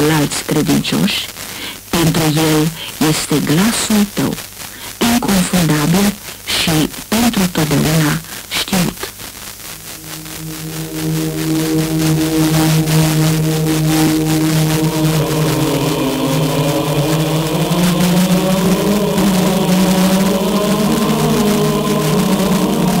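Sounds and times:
radio static crackle: 0.0s - 23.0s
choir chanting on car radio: 10.7s - 23.0s.

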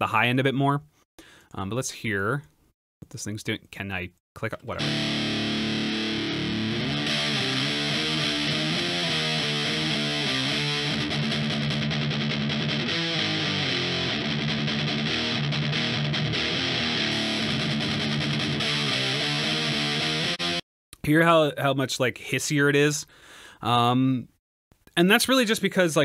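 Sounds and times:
distorted electric guitar chords: 4.8s - 20.6s.

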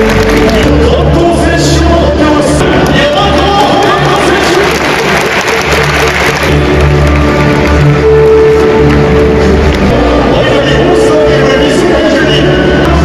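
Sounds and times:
crowd applauding: 0.0s - 13.0s
stadium music with bass line: 0.0s - 13.0s.

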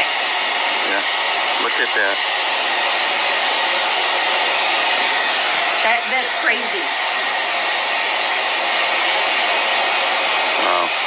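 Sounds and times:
small fan blowing air: 0.0s - 11.0s.

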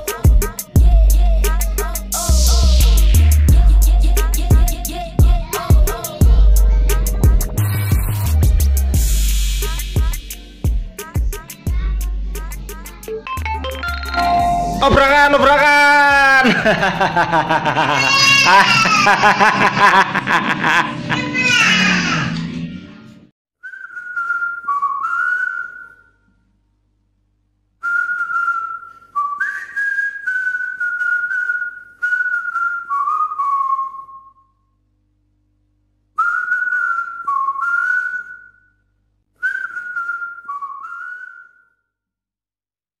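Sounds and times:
person whistling a tune: 23.6s - 26.2s, 27.8s - 34.5s, 36.2s - 38.7s, 39.4s - 41.8s.

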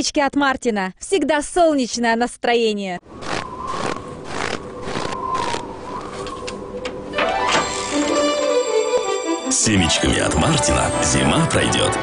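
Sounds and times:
footsteps crunching in snow: 3.2s - 6.3s
light music: 7.1s - 12.0s.

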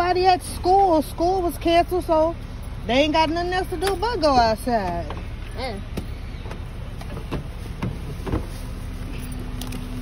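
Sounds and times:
car door clicks and knocks: 5.9s - 8.5s.

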